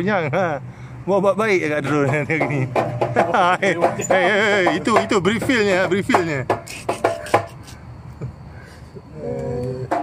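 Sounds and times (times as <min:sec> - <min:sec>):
metallic knocks of steel drum: 0:02.0 - 0:07.5.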